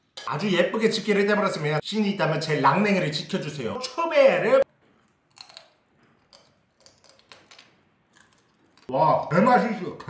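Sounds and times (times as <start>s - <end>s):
crunching crab shell: 5.1s - 8.9s.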